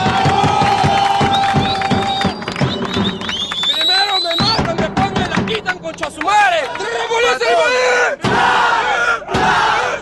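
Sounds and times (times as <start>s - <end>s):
crowd shouting and chanting: 0.0s - 2.4s, 6.3s - 10.0s.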